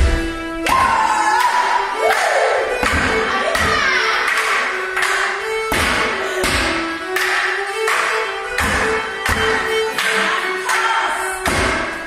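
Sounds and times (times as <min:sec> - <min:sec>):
fiddle dance tune: 0:00.0 - 0:12.0
hand claps: 0:00.7 - 0:12.0
sticks striking: 0:02.7 - 0:04.0, 0:05.1 - 0:12.0.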